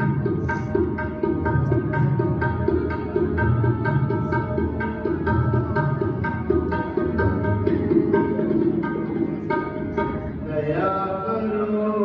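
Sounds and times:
sustained melodic tones: 0:00.0 - 0:11.9
tabla beat: 0:00.0 - 0:12.0.

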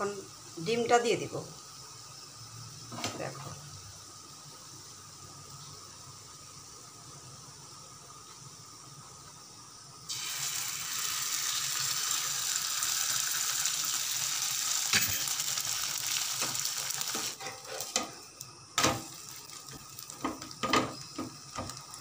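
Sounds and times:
egg sizzling on a hot pan: 0:00.0 - 0:22.0.

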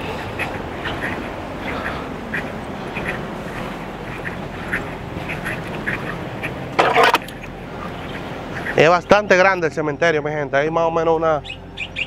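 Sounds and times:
low background noise: 0:00.0 - 0:12.0
bird calling in sharp notes: 0:10.8 - 0:12.0.

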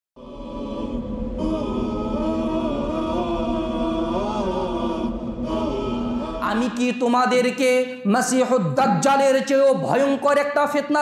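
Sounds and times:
slow vocal chant: 0:00.2 - 0:06.8.

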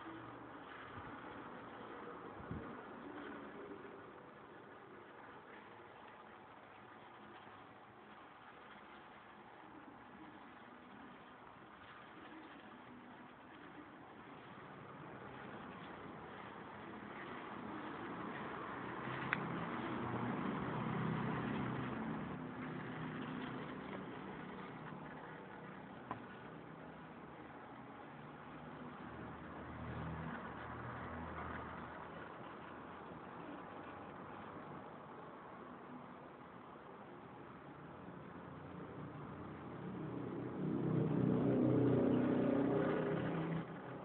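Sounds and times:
electric motor and propeller humming: 0:00.0 - 0:34.5, 0:38.8 - 0:44.0
low motor-like drone: 0:39.9 - 0:43.9.

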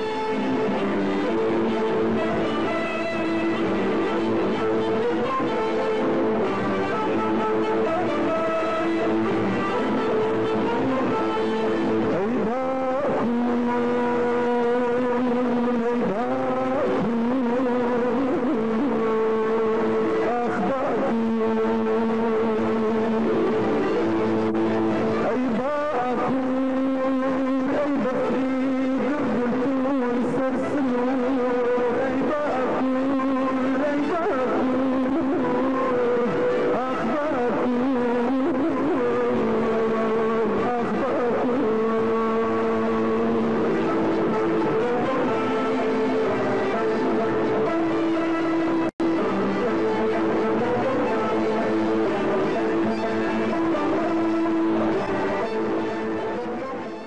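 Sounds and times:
person singing long held note: 0:00.0 - 0:57.0
violin ensemble: 0:00.0 - 0:57.0.

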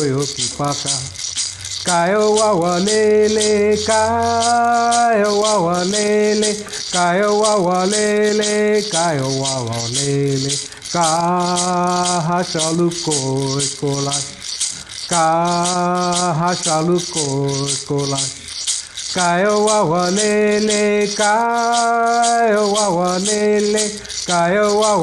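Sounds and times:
handheld rattle shaken: 0:00.0 - 0:25.0
man singing: 0:00.0 - 0:25.0.

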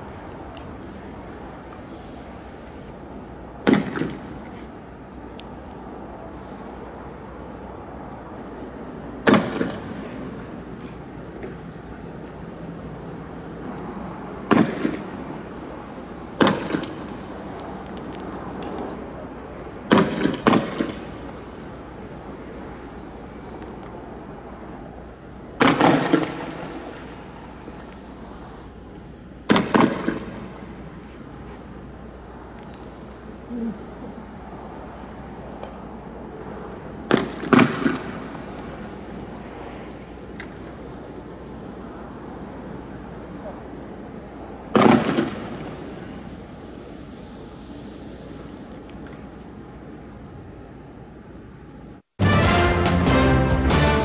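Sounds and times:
steady background noise: 0:00.0 - 0:54.0
tear gas launchers firing: 0:16.4 - 0:17.2, 0:29.5 - 0:30.4, 0:44.7 - 0:45.9.

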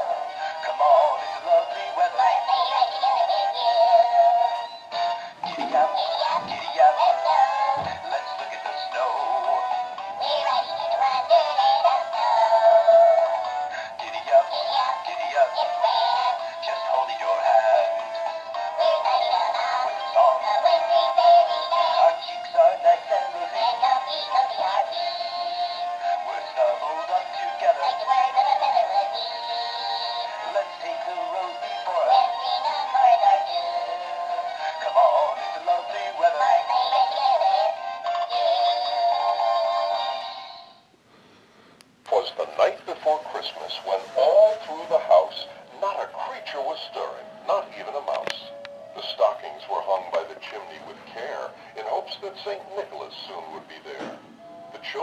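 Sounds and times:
tinny sung song from toy speaker: 0:00.0 - 0:40.8, 0:42.1 - 0:55.0.

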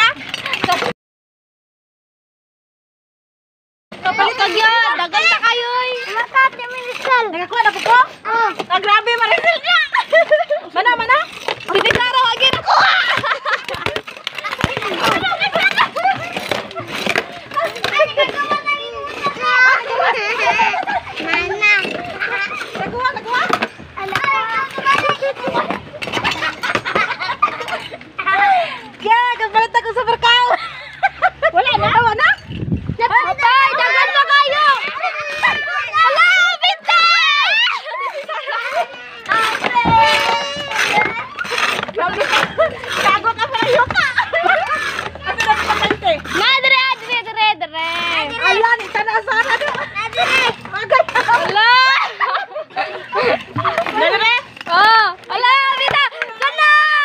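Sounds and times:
crowd shouting and chattering: 0:03.9 - 0:57.0.

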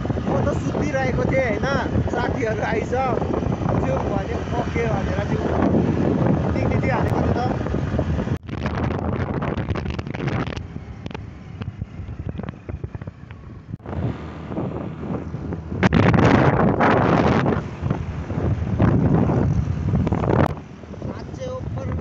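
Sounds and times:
road and vehicle noise: 0:00.0 - 0:22.0
wind buffeting microphone: 0:00.0 - 0:22.0.

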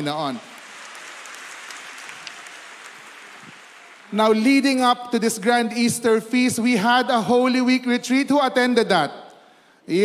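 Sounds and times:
audience applause: 0:00.0 - 0:04.7.

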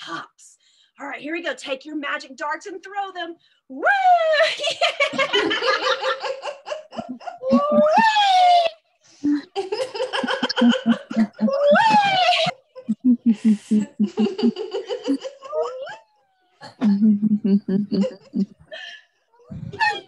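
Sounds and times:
people laughing: 0:04.6 - 0:08.3, 0:09.3 - 0:15.9, 0:16.7 - 0:18.9.

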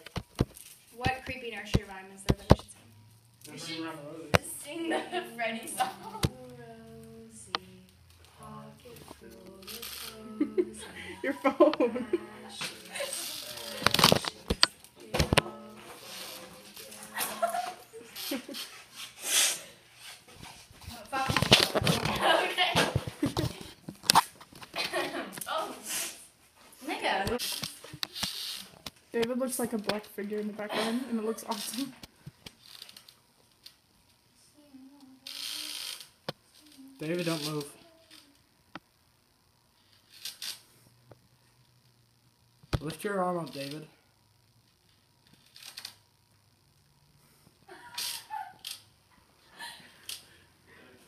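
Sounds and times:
people giggling and laughing: 0:04.7 - 0:06.4, 0:10.2 - 0:13.5, 0:17.0 - 0:18.8, 0:24.7 - 0:25.4, 0:47.7 - 0:48.6
short burst of hiss: 0:19.2 - 0:19.7.

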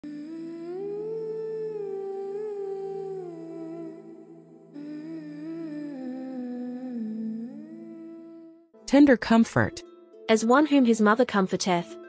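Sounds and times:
low drone: 0:00.0 - 0:08.6
hummed melody: 0:00.0 - 0:08.8.

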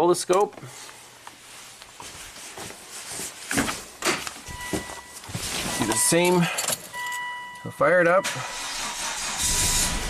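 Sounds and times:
clothing rustle: 0:00.7 - 0:06.2
footsteps: 0:00.7 - 0:06.3.

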